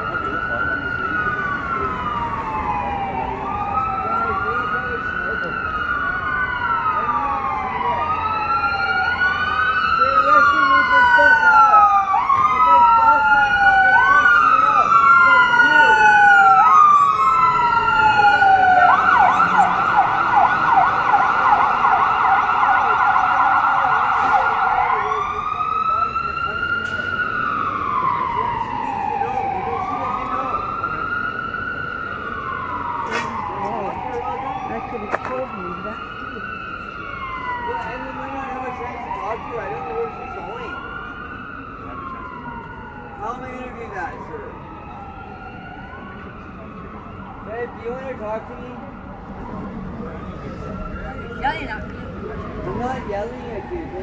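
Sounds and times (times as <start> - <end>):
siren yelping: 0.0 - 54.0
sirens wailing: 0.0 - 54.0.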